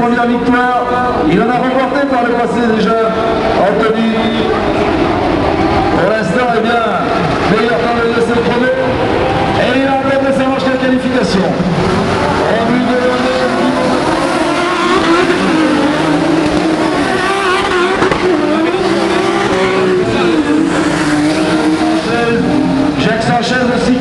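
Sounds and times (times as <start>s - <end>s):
racing car engines revving: 0.0s - 24.0s.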